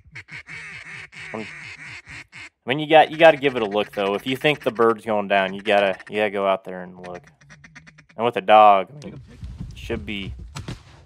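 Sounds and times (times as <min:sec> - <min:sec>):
ducks quacking: 0:00.0 - 0:09.3.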